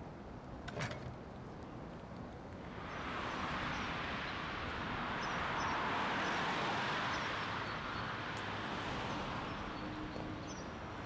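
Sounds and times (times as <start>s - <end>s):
traffic on wet street: 2.6s - 11.0s.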